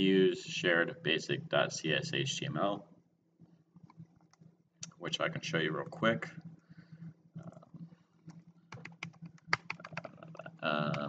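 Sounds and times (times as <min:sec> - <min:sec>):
person speaking: 0:00.0 - 0:02.8, 0:04.8 - 0:06.5, 0:09.6 - 0:11.0
low steady hum: 0:00.0 - 0:11.0
keyboard typing: 0:08.2 - 0:11.0.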